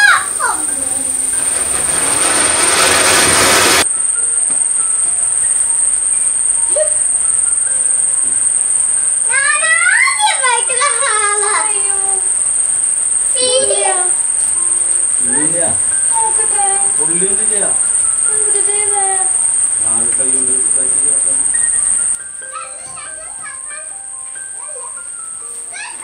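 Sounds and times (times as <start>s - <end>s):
voices calling out: 0.0s - 3.9s, 6.1s - 22.2s
ground fountain firework hissing: 0.0s - 22.5s
crickets chirping: 0.0s - 26.0s.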